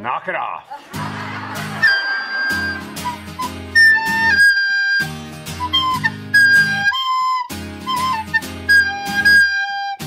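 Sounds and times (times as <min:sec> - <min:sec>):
acoustic guitar strumming: 0:00.9 - 0:10.0
recorder playing a melody: 0:01.8 - 0:10.0.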